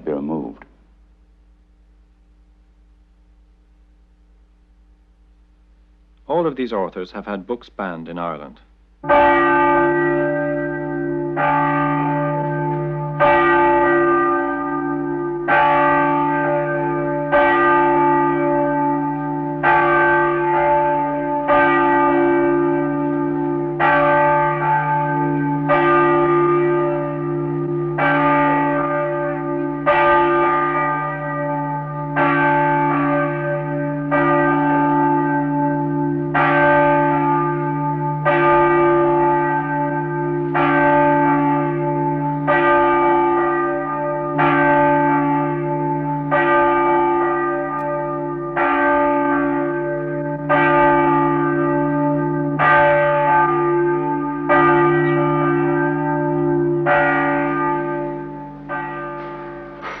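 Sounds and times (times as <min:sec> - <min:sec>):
large bell tolling: 0:00.0 - 0:00.6, 0:09.0 - 1:00.0.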